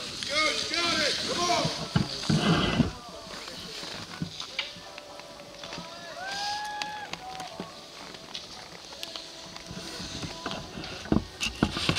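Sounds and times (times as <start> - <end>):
people calling out drawn-out cries: 5.8 - 7.6.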